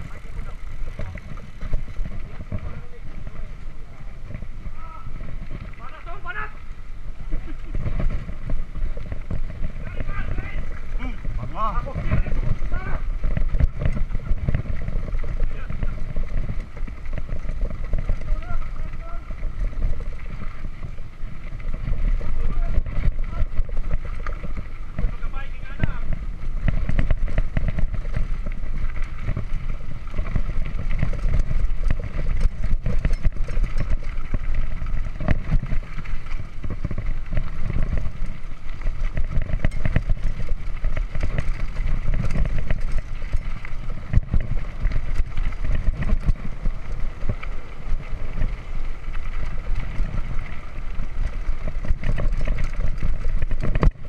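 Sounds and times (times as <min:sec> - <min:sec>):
wind and tyres rumbling: 0:00.0 - 0:54.0
bike rattling knocks: 0:07.4 - 0:54.0.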